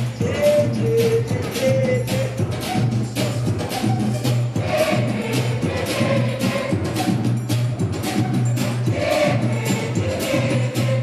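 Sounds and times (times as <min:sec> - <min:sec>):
singing voices: 0:00.0 - 0:11.0.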